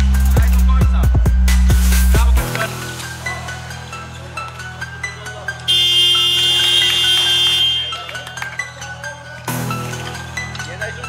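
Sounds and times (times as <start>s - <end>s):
background music: 0.0s - 11.0s
arena buzzer: 5.7s - 8.2s.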